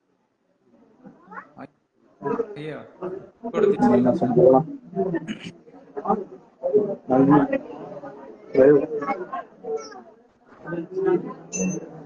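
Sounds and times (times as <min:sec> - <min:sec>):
person's voice over video call: 0:02.6 - 0:02.8, 0:03.6 - 0:04.4, 0:05.2 - 0:05.5.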